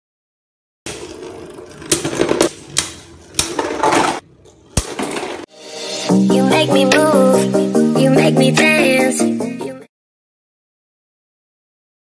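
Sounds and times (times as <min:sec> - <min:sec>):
music: 0:05.5 - 0:09.9.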